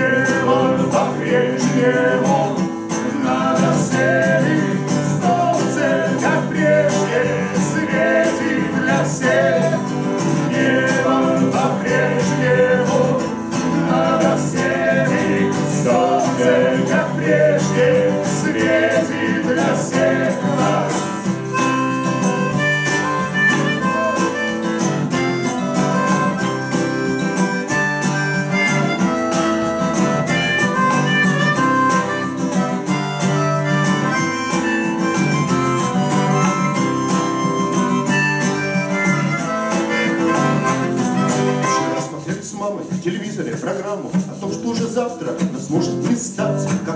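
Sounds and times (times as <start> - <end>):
acoustic guitar strummed chords: 0.0 - 46.9
wavering melody line: 5.9 - 42.0.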